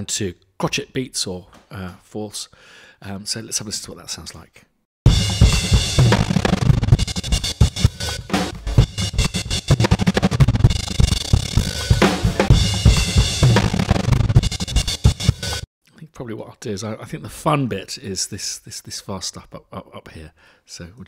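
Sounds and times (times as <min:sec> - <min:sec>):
gated stuttering drum loop: 0:05.0 - 0:15.7.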